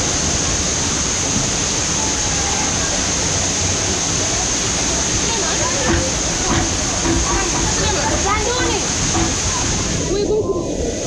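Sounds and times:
water rushing down waterslide: 0:00.0 - 0:11.0
faint voices: 0:02.1 - 0:11.0.

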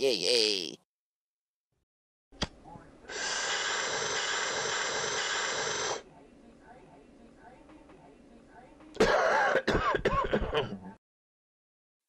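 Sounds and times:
man coughing: 0:09.0 - 0:10.9.

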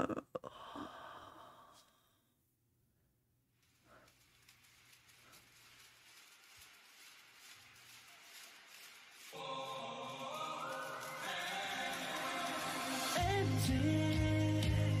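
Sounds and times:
faint exhale: 0:00.5 - 0:02.3.

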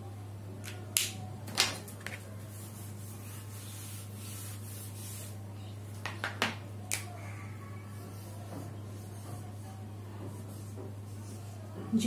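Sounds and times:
eraser scraping whiteboard: 0:02.1 - 0:05.4.

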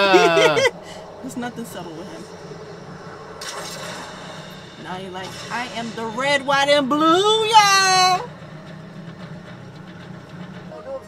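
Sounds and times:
low rumbling rushing drone: 0:00.0 - 0:11.0.

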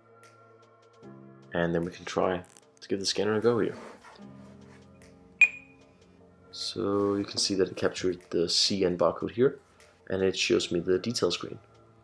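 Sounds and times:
soft background music: 0:00.0 - 0:12.0
barcode scanner beep: 0:05.4 - 0:05.7.

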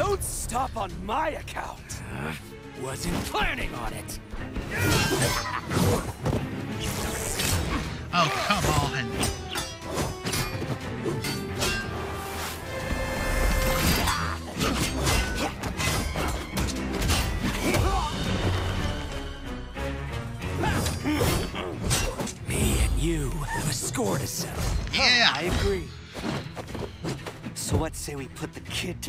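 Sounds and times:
fast battle music: 0:00.0 - 0:26.0.

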